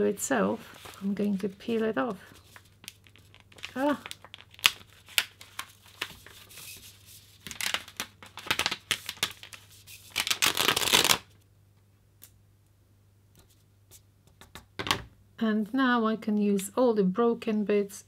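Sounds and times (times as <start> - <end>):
paper crinkling and rustling: 0.6 - 11.2.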